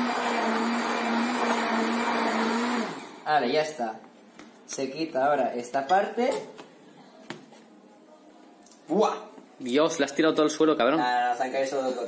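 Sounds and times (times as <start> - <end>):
stick blender running: 0.0 - 3.3.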